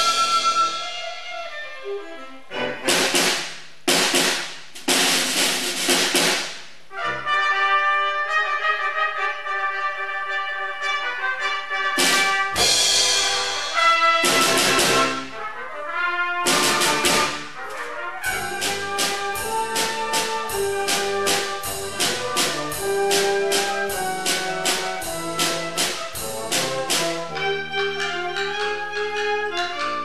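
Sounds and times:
wind band playing loud chords: 0.0s - 1.7s, 2.5s - 3.4s, 5.3s - 30.0s
sharp percussion hits: 2.9s - 6.7s, 12.0s - 15.3s, 18.3s - 27.5s
cymbal crashes: 12.1s - 15.2s.

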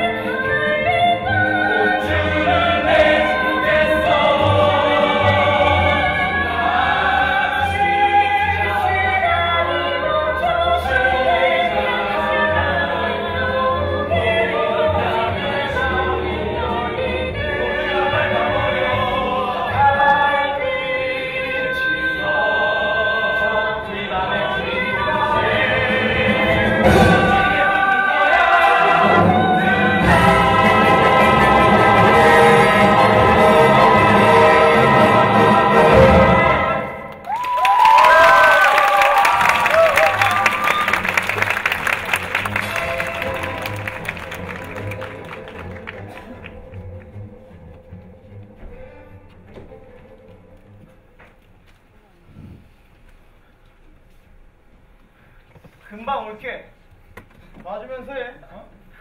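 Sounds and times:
musical theatre ensemble singing: 0.0s - 51.0s
whoops and cheers: 37.2s - 41.2s
audience applauding: 37.2s - 47.1s
low pulsing music: 42.5s - 51.2s.

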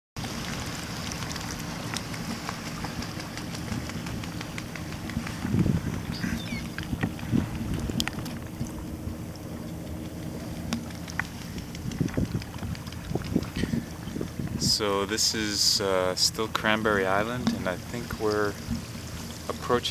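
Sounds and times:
wind on microphone: 0.2s - 9.6s, 10.3s - 15.1s
water lapping against kayak hull: 0.2s - 19.9s.

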